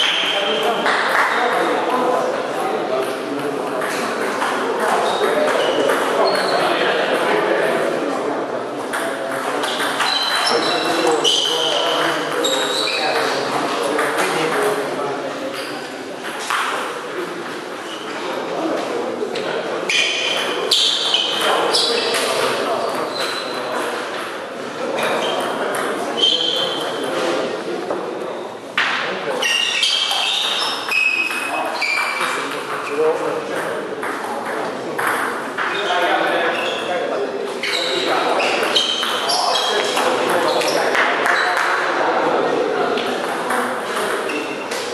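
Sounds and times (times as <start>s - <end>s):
table tennis balls bouncing: 0.0s - 2.1s, 3.0s - 7.6s, 8.8s - 14.8s, 15.5s - 17.3s, 19.9s - 24.4s, 25.0s - 27.2s, 28.8s - 36.3s, 37.7s - 42.0s, 42.9s - 44.9s
background voices chatter: 0.0s - 44.9s.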